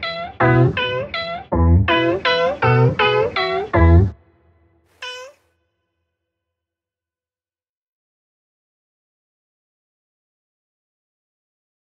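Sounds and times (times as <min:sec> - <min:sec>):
cat meow: 0:05.0 - 0:05.4.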